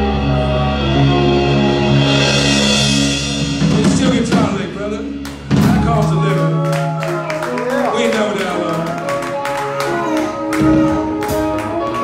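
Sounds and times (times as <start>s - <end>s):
rock band sustained chord: 0.0s - 7.9s
drum and cymbal hits: 1.1s - 6.6s.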